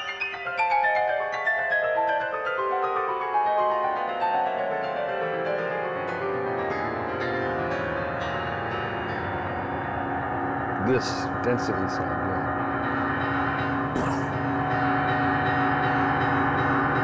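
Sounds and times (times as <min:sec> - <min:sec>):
midi piano piece: 0:00.0 - 0:17.0.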